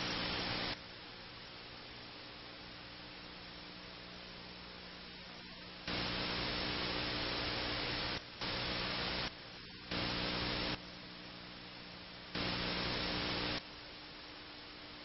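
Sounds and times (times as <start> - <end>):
static hiss: 0.0 - 15.0
steady low hum: 0.0 - 15.0.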